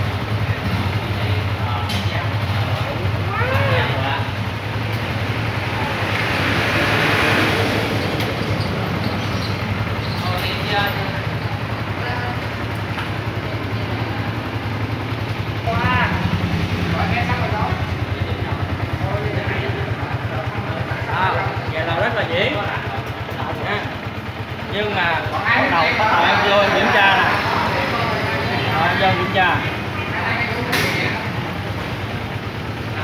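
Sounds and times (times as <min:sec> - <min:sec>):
motorcycle engine idling: 0:00.0 - 0:33.0.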